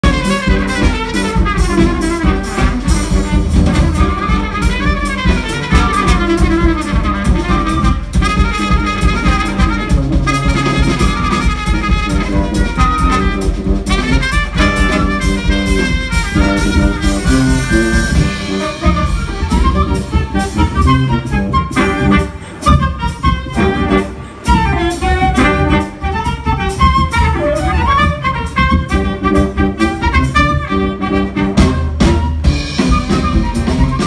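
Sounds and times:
driving beat: 0:00.0 - 0:34.0
trombone: 0:00.0 - 0:34.0
wind band playing jazz tune: 0:00.0 - 0:34.0
flute: 0:00.1 - 0:34.0.

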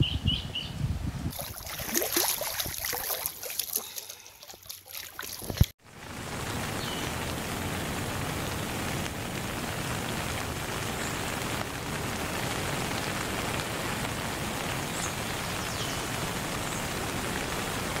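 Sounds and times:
rain-like hiss: 0:05.4 - 0:18.0.

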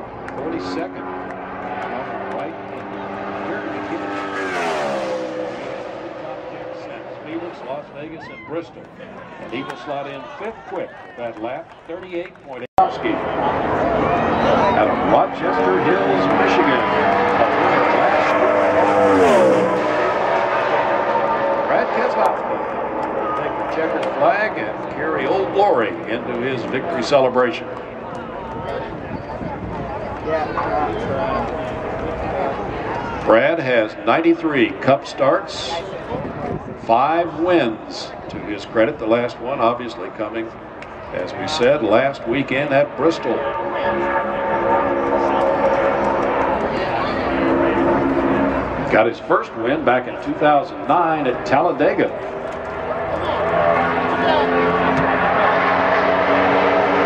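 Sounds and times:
race car engine passing by: 0:00.0 - 0:10.2, 0:12.8 - 0:57.0.

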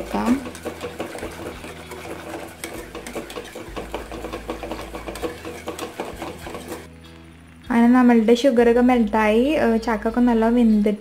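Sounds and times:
wire whisk clicking in a pot: 0:00.0 - 0:06.9.

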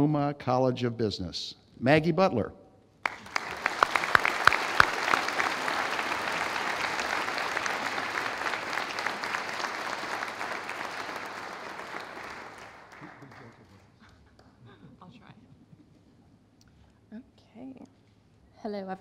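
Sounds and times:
audience applauding: 0:03.0 - 0:14.0
sharp claps: 0:03.0 - 0:14.5.

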